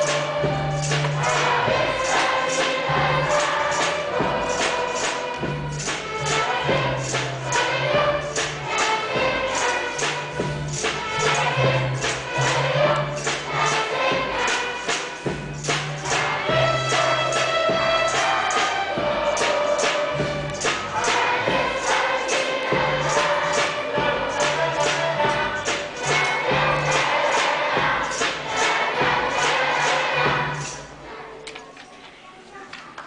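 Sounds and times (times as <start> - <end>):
steady percussive beat: 0.0 - 31.1
instrumental accompaniment: 0.0 - 32.2
children's choir singing: 0.0 - 33.0.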